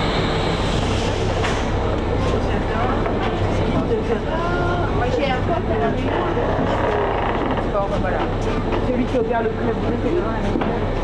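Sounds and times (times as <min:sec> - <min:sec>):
ferry engines idling hum: 0:00.0 - 0:11.0
passengers talking: 0:00.5 - 0:11.0.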